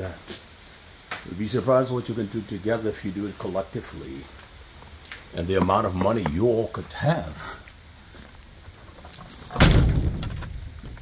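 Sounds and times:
deep loud thump: 9.5 - 10.7.

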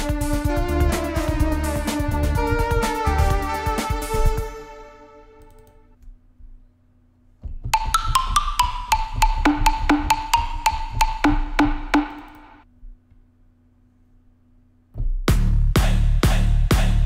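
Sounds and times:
low synth bass: 0.0 - 4.9
synth plucked notes pattern: 0.0 - 5.7, 7.8 - 12.6.

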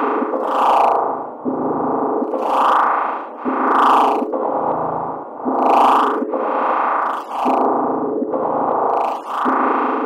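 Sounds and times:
distorted synthesizer texture: 2.2 - 7.8, 8.4 - 9.7.

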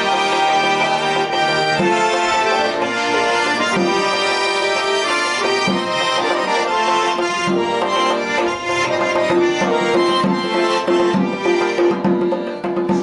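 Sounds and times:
accordion folk melody: 0.0 - 13.0.

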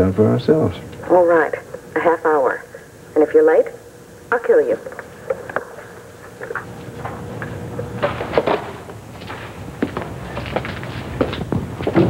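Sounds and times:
footsteps on hard floor: 6.5 - 12.0.

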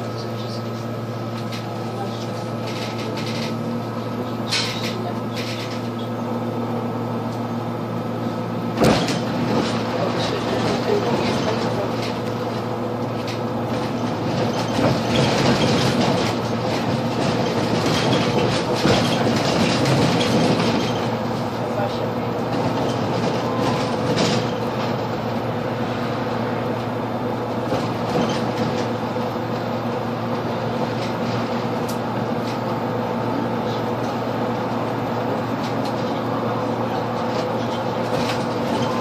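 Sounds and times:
bus drivetrain hum: 0.0 - 39.0
road noise: 0.0 - 39.0
knocks and rattles: 13.2 - 21.1.

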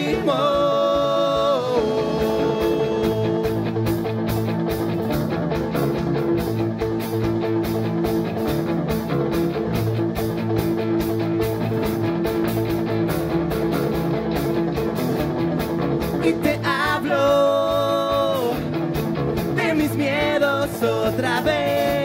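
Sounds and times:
guitar: 0.0 - 22.0
steady drum beat: 0.0 - 22.0.

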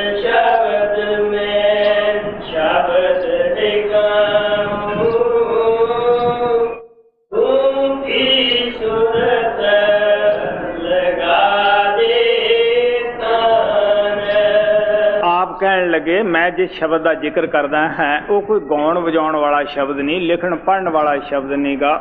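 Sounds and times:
person chanting: 0.0 - 22.0.

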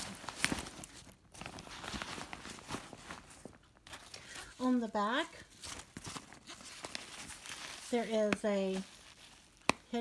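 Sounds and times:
nylon bag rustling: 0.0 - 10.0.

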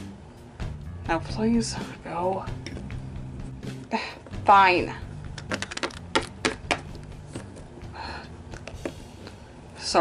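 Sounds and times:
plastic figurine clicking on floor: 5.4 - 6.8.

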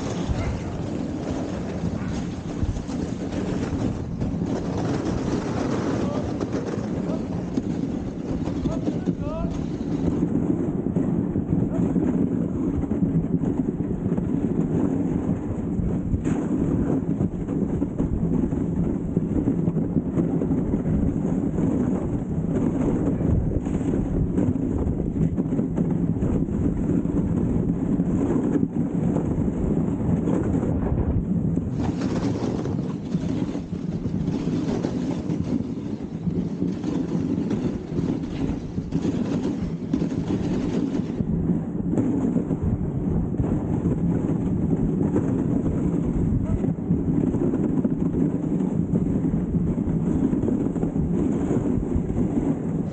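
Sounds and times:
dog sled runners on snow: 0.0 - 52.9.

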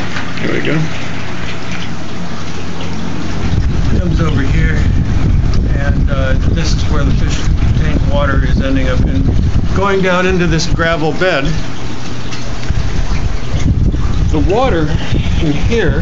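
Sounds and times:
water splashing onto filter: 0.0 - 16.0
wind rumble on microphone: 3.3 - 11.7, 12.6 - 16.0.

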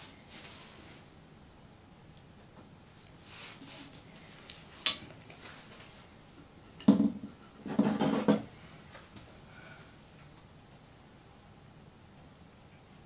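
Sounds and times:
rattling scrape on plastic: 7.6 - 8.5.

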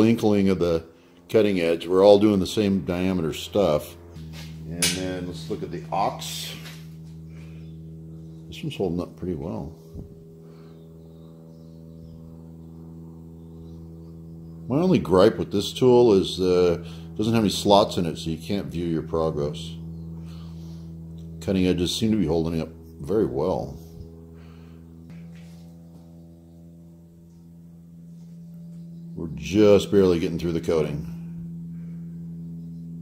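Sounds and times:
electrical hum: 0.0 - 33.0.

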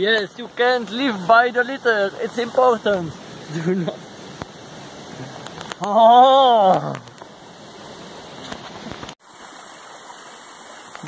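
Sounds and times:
steady rushing background noise: 0.0 - 5.8.

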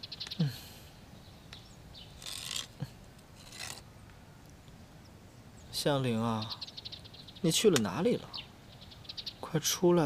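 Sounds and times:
scraping rustling noises: 2.1 - 3.9.

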